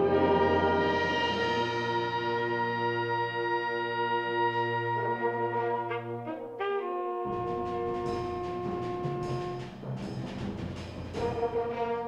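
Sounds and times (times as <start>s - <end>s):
timpani roll: 0.0s - 6.1s, 6.9s - 12.0s.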